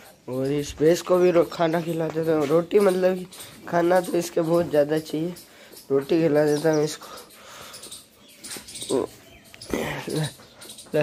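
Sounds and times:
breathy puffs: 7.0 - 8.7, 9.6 - 10.8.

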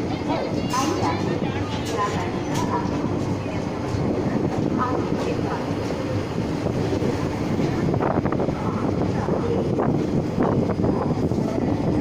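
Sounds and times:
train wheels rumbling on rails: 0.0 - 12.0.

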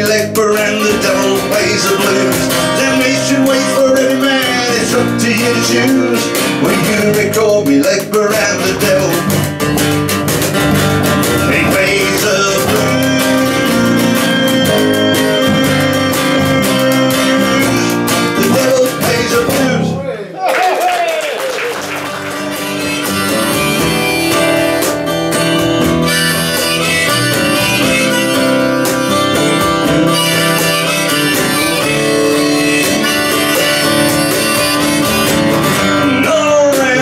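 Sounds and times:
box drum played by hand: 0.0 - 19.9, 22.5 - 37.0
strummed acoustic guitar: 0.0 - 20.0, 21.8 - 37.0
electric bass guitar: 0.0 - 20.2, 21.9 - 37.0.

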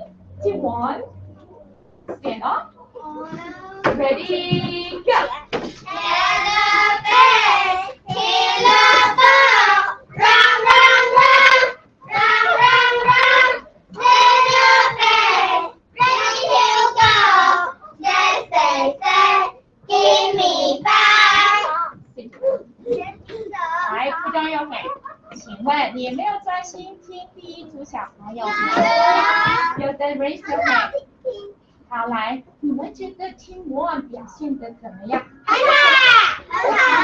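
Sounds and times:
children chanting in unison: 5.9 - 21.7, 35.5 - 37.0.

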